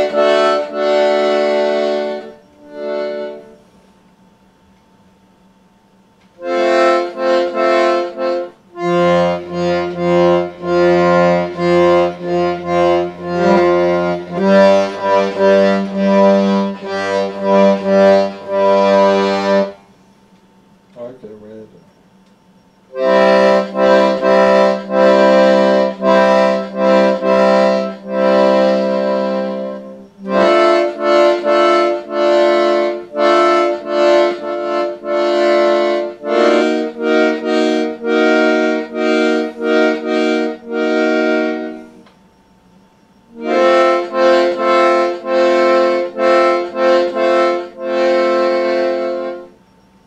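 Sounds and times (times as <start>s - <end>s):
accordion playing chords: 0.0s - 21.9s, 22.8s - 50.0s.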